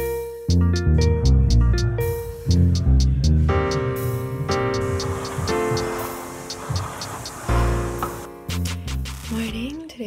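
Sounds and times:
light ticking beat: 0:00.5 - 0:09.9
sustained chords: 0:00.8 - 0:08.4.

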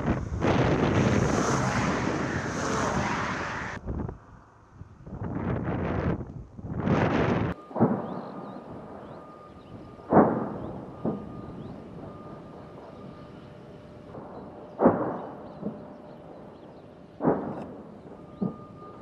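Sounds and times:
artillery explosions: 0:00.0 - 0:03.7, 0:07.5 - 0:19.0
rushing wind-like noise: 0:00.0 - 0:07.6.

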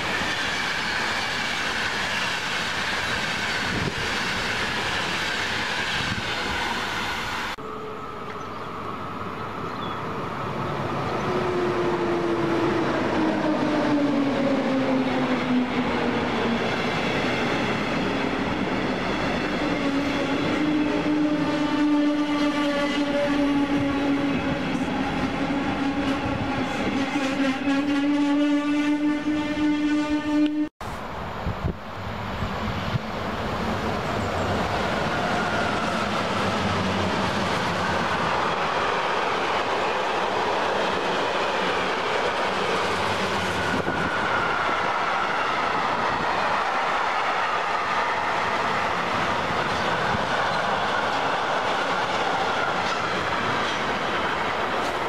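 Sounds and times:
electric locomotive whine: 0:00.0 - 0:55.0
freight train rumbling past: 0:00.0 - 0:55.0.

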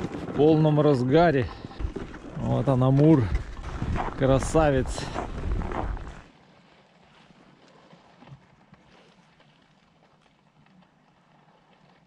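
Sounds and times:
river ice ticking and crackling: 0:00.0 - 0:12.0.

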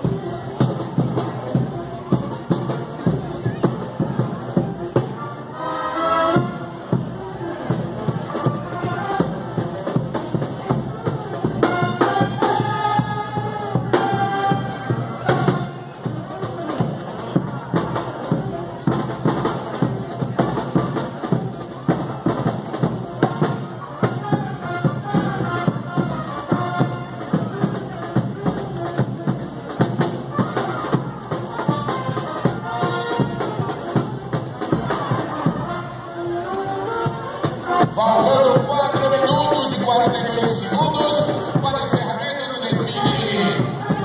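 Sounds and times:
marching band playing: 0:00.0 - 0:44.0.

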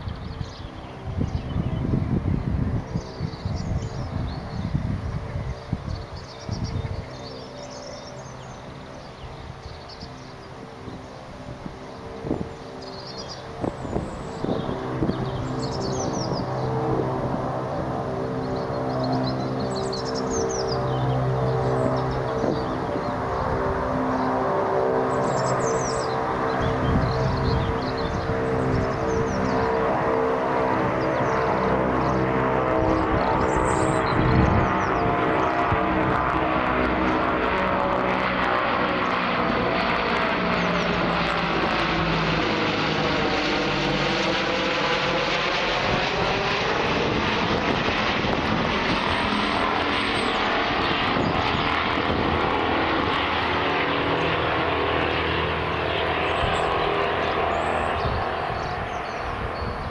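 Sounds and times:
turboprop aircraft propeller drone: 0:00.0 - 0:59.9.

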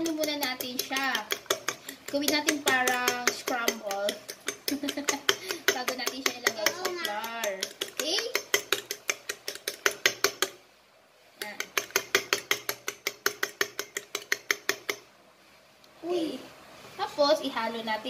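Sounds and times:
fork beating eggs in bowl: 0:00.0 - 0:10.6, 0:11.4 - 0:15.1.

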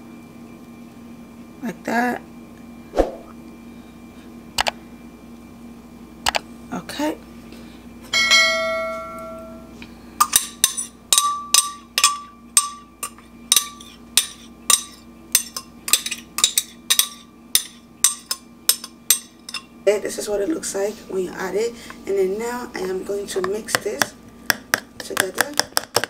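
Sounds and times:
ringing glass clink: 0:08.1 - 0:09.7, 0:10.6 - 0:13.8.

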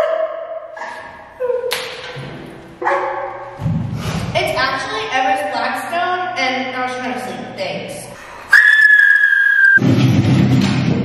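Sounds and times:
high whistle-like tone: 0:08.5 - 0:09.8.

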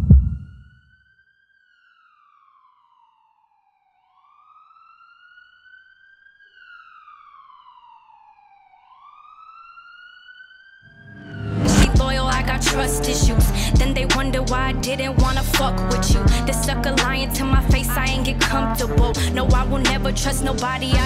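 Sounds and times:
deep boom: 0:00.0 - 0:00.7, 0:11.1 - 0:14.0
faint siren wailing: 0:00.1 - 0:21.0.

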